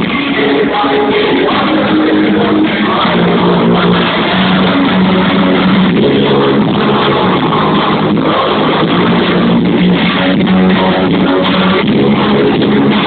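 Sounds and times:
punk rock band playing: 0.0s - 13.0s.

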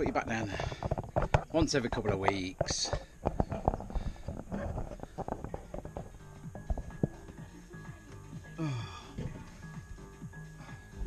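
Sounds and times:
cushions knocking and bumping: 0.0s - 10.3s
faint music with held notes: 0.0s - 11.0s.

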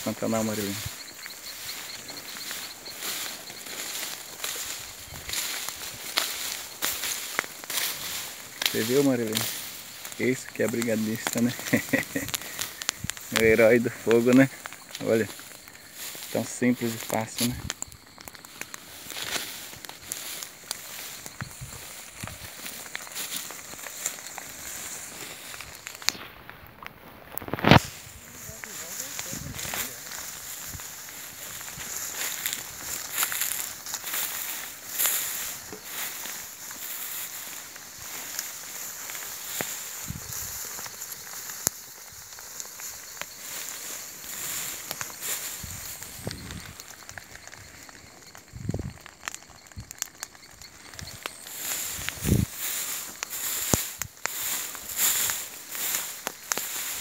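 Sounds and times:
footsteps in tall grass: 0.0s - 57.0s.

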